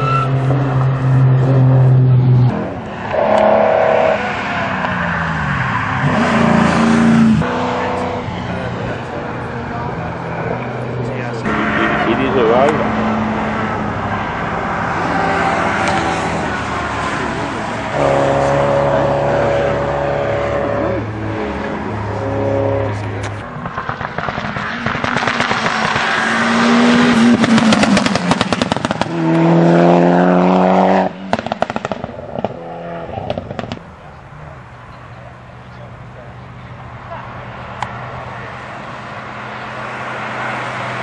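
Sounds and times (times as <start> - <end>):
engines revving hard: 0.0 - 33.8, 37.7 - 41.0
cars racing past: 0.0 - 41.0.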